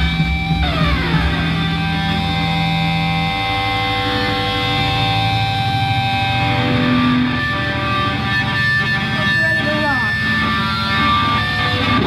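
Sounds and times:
bass line: 0:00.0 - 0:12.0
distorted electric guitar: 0:00.0 - 0:12.0.

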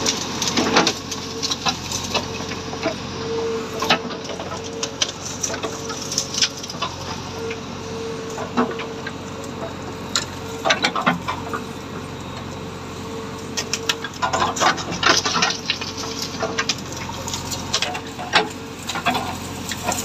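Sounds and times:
diesel engine running under load: 0:00.0 - 0:20.0
engine whine: 0:00.0 - 0:20.0
branches cracking and snapping: 0:03.9 - 0:07.3, 0:13.6 - 0:20.0.

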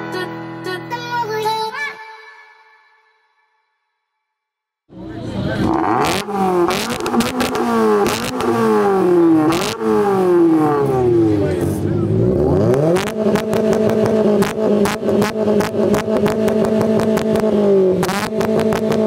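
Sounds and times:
car engine revving: 0:04.9 - 0:19.0
exhaust cracks: 0:04.9 - 0:19.0.

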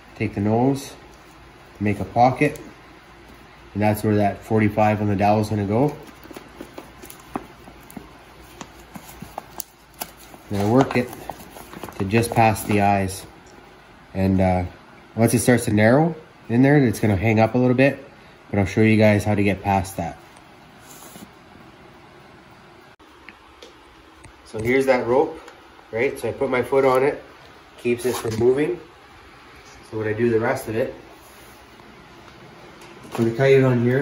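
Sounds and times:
low steady hum: 0:00.0 - 0:34.0.

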